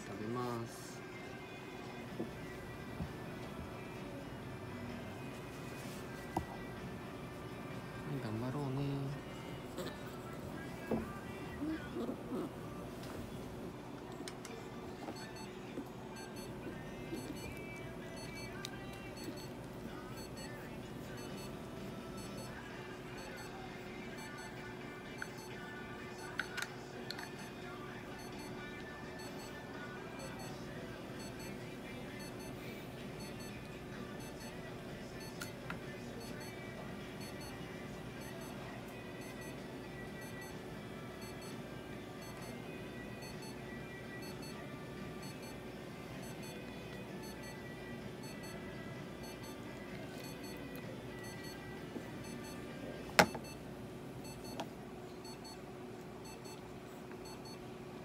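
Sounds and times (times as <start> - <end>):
faint background music: 0.0 - 58.0
steady room hum: 0.0 - 58.0.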